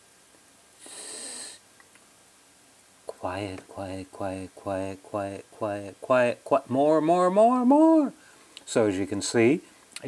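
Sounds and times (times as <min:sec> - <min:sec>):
person breathy hiss: 0:00.8 - 0:01.7.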